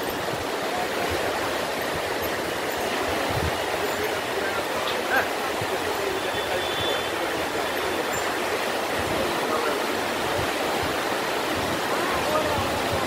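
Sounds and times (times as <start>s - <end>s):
river water rushing over stones: 0.0s - 13.0s.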